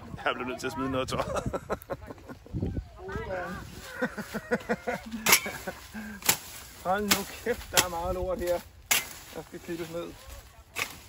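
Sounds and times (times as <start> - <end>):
people talking: 0.0 - 5.2
machete chopping stems: 6.2 - 8.1, 8.8 - 9.4, 10.8 - 11.0.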